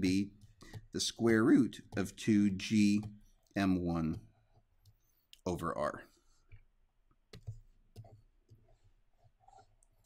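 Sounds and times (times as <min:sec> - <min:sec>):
stylus tapping on drawing tablet: 0:00.2 - 0:05.0, 0:06.5 - 0:08.7.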